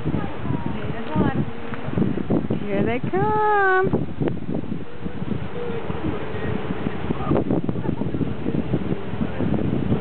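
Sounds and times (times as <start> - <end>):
choppy sea water: 0.0 - 10.0
wind buffeting microphone: 0.0 - 10.0.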